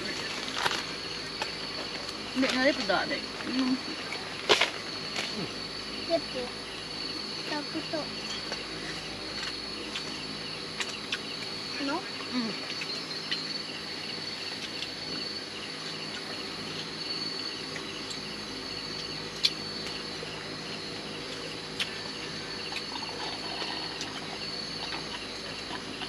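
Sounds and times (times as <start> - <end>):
insects chirring: 0.0 - 26.0.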